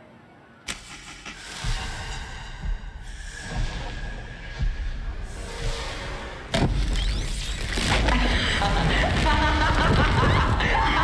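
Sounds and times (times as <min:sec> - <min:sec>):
deep pulsing rumble: 0:01.2 - 0:06.8.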